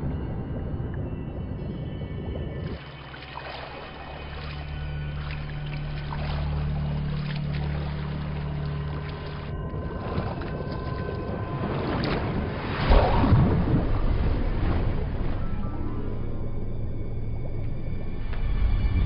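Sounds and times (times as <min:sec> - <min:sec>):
low drone: 0:00.0 - 0:19.0.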